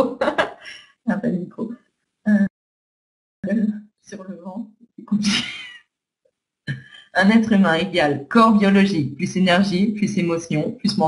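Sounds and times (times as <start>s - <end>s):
woman's voice over internet call: 0.0s - 2.5s, 6.7s - 11.0s.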